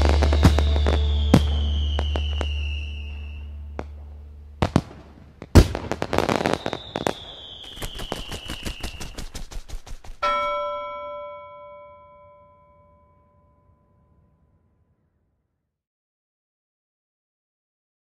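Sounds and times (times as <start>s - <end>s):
firework whistle falling in pitch: 0.0s - 5.0s, 6.2s - 9.2s
firework bangs: 0.0s - 10.8s
rapid crackling pops: 4.6s - 10.3s
bell-like chime: 10.2s - 14.1s.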